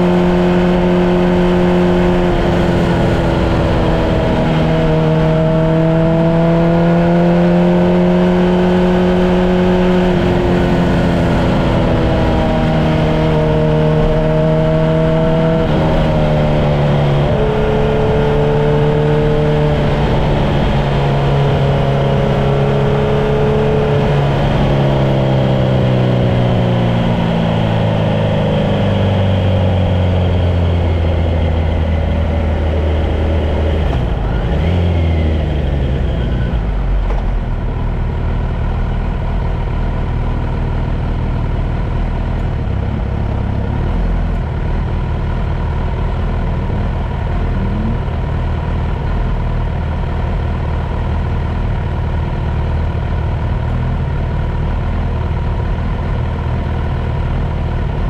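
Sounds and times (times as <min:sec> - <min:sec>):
car engine from inside cabin: 0:00.0 - 0:58.0.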